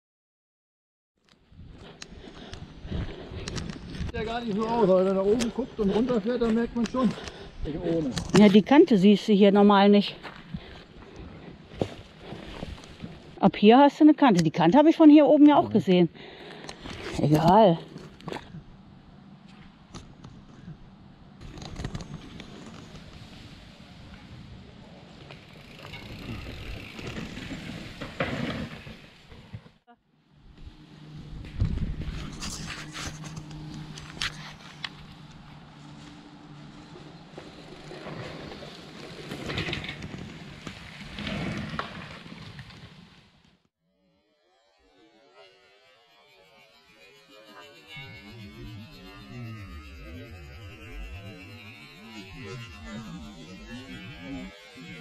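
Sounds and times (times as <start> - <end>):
tyres rolling over dirt and roots: 25.1 - 29.7, 36.8 - 43.1
bike rattling over bumps: 25.1 - 29.8, 36.8 - 43.1
steady low hum: 45.0 - 55.0.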